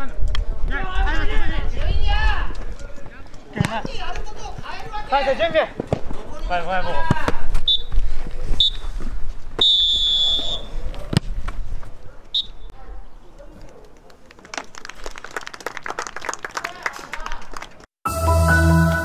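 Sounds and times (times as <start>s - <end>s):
players' voices: 0.0s - 9.2s
referee's whistle blowing: 7.6s - 8.0s, 8.6s - 8.9s, 9.6s - 10.8s, 12.4s - 12.7s
clapping: 14.0s - 17.9s
music jingle: 18.1s - 19.0s.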